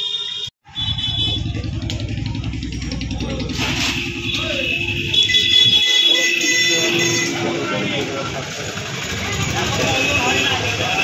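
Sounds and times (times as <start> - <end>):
motor engine running: 0.9 - 5.7, 7.5 - 11.0
people talking: 1.2 - 11.0.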